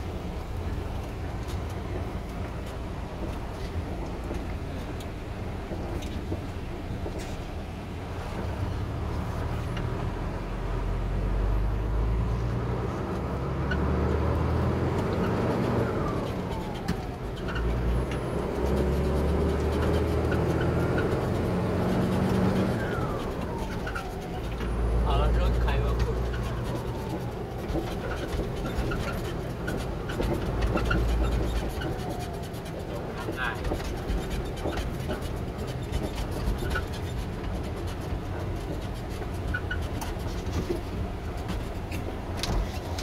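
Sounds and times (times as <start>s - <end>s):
truck engine from inside cab: 0.0s - 43.0s.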